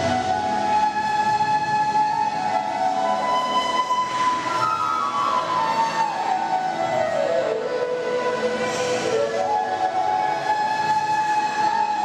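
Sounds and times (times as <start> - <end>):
solo flute playing held notes: 0.0 - 12.0.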